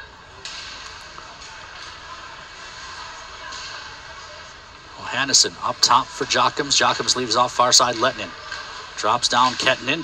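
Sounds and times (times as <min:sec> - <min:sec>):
crowd: 0:00.0 - 0:10.0.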